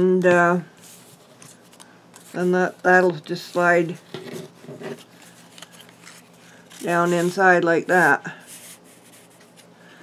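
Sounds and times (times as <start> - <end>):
paper rustling: 0.8 - 9.7
woman speaking: 2.4 - 4.0, 6.8 - 8.4.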